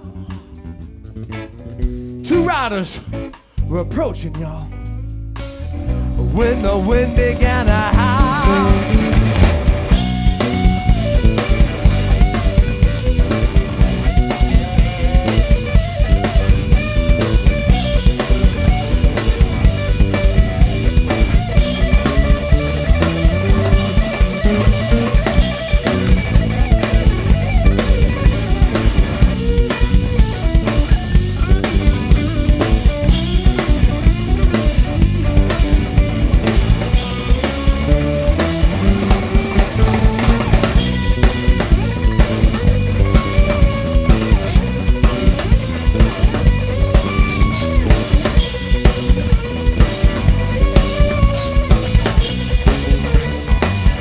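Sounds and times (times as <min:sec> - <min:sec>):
drum kit steady beat: 0:00.0 - 0:54.0
electric bass: 0:00.0 - 0:54.0
electric guitar solo: 0:05.8 - 0:54.0.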